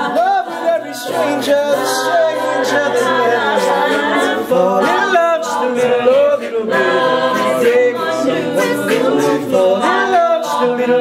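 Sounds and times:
vocal group singing in harmony: 0.0 - 11.0.

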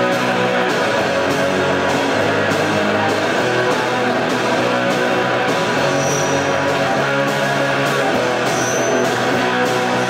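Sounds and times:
distorted electric guitar strummed: 0.0 - 10.0
drums: 0.0 - 10.0.

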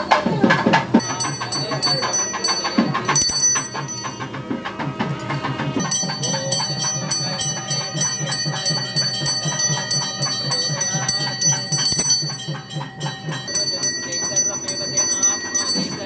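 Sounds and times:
low regular beat: 0.0 - 16.0
brass hand bell ringing rapidly: 0.7 - 16.0.

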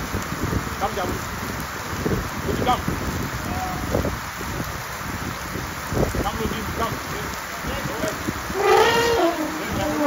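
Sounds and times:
steady rain falling: 0.0 - 10.0
indistinct voices: 8.5 - 10.0.

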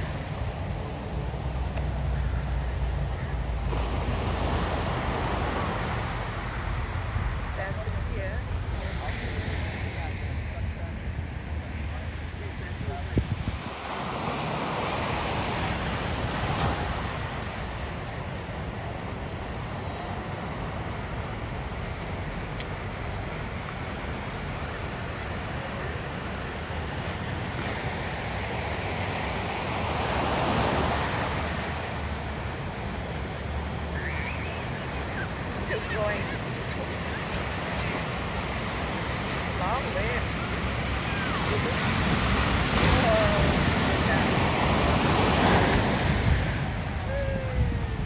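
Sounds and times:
ocean surf breaking: 0.0 - 48.0
wind rumbling on microphone: 0.0 - 48.0.

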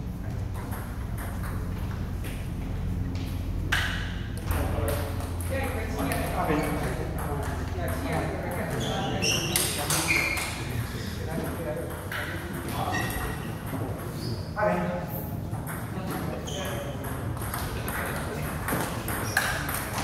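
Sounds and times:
table tennis ball clicks: 18.6 - 20.0.

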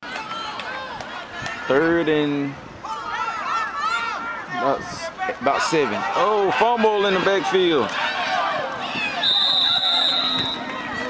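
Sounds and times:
crowd chatter: 0.0 - 11.0
referee's whistle: 9.1 - 10.7.

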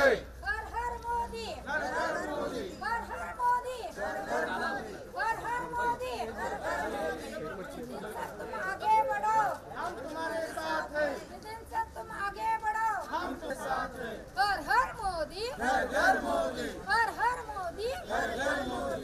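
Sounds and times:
group of people chattering: 0.0 - 19.0.

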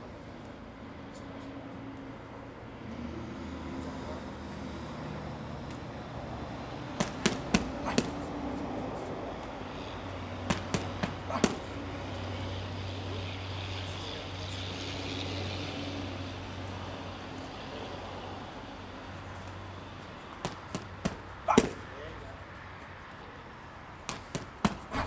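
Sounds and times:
gloves smacking kick pads: 7.0 - 8.3, 10.5 - 11.8, 20.4 - 21.8, 24.1 - 25.0.

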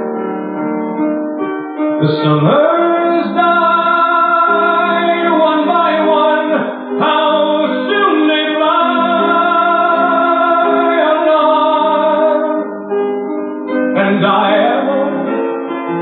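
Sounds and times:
slow ballad singing in harmony: 2.0 - 12.7, 13.8 - 15.5.

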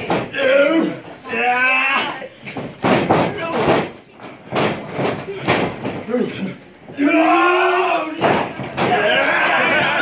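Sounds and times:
crowd voices: 0.0 - 10.0.

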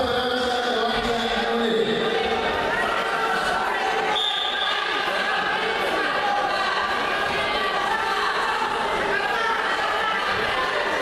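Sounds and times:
murmur of voices: 0.0 - 11.0
referee's whistle blast: 4.1 - 4.8.

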